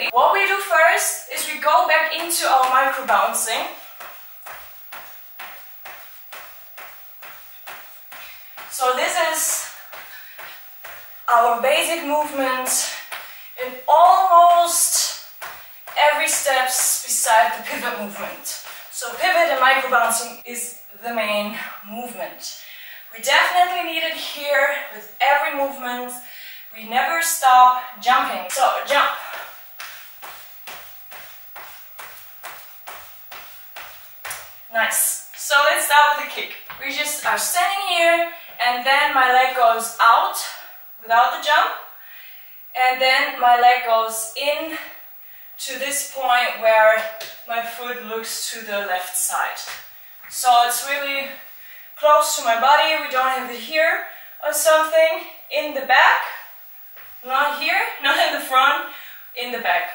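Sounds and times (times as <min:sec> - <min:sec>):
sneakers thudding on wooden floor: 0:03.8 - 0:08.8, 0:09.4 - 0:11.2, 0:15.4 - 0:16.5, 0:28.9 - 0:34.7.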